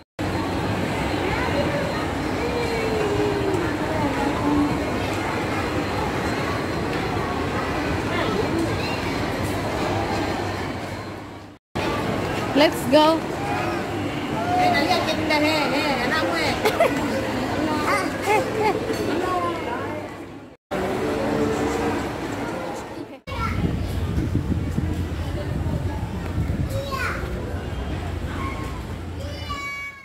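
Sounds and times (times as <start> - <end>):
crowd hubbub: 0.0 - 30.0
busy indoor hum: 0.2 - 30.0
children's voices: 25.5 - 30.0.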